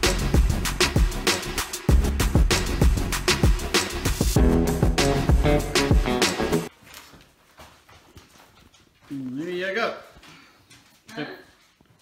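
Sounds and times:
background music: 0:00.0 - 0:06.7.

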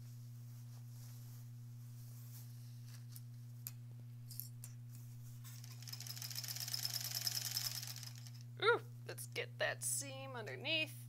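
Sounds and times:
sewing machine stitching: 0:05.6 - 0:08.3.

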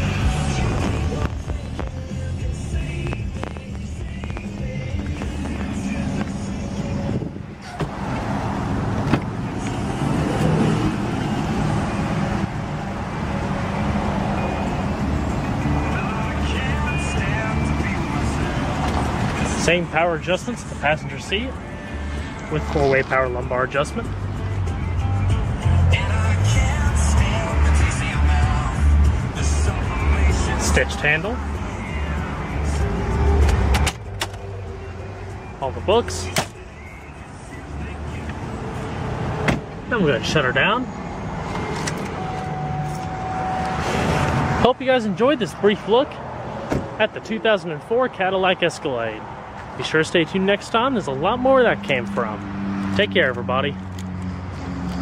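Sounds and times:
car engine idling hum: 0:00.0 - 0:46.0.

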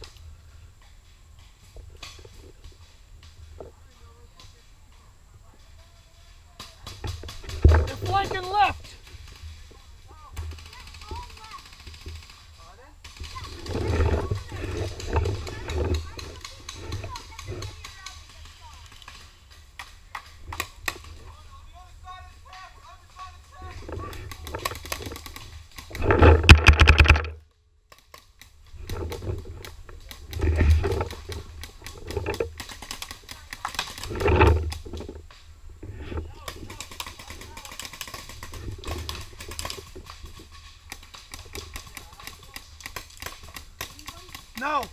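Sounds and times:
voices calling out: 0:03.4 - 0:26.4.

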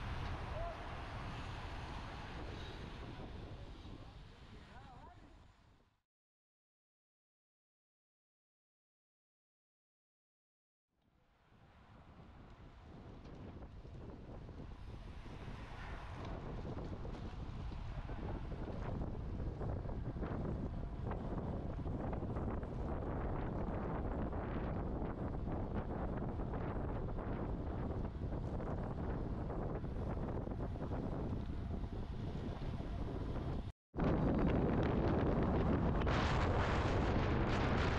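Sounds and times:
wind rushing over microphone: 0:00.0 - 0:04.9, 0:11.7 - 0:37.9.

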